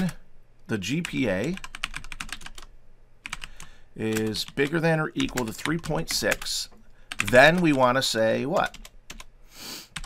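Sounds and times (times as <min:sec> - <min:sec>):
computer keyboard typing: 0:01.0 - 0:09.3.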